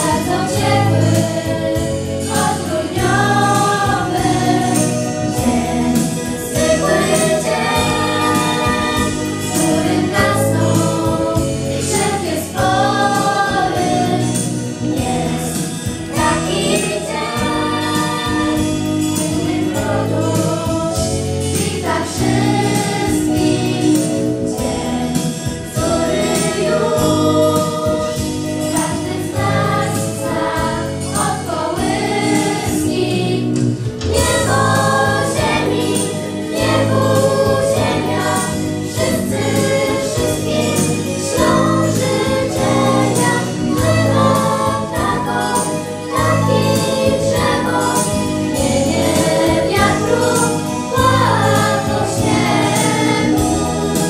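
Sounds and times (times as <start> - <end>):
girls' choir singing carol: 0.0 - 54.0
instrumental accompaniment: 0.0 - 54.0.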